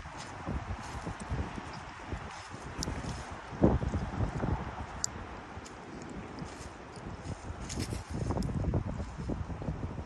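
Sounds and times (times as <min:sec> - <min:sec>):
footsteps on grass and leaves: 0:00.0 - 0:09.7
wind rumbling on microphone: 0:00.0 - 0:10.0.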